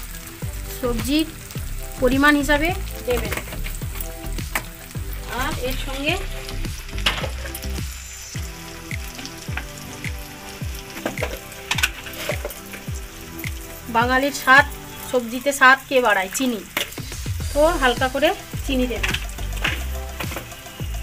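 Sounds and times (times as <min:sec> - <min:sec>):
spices frying and sizzling: 0:00.0 - 0:21.0.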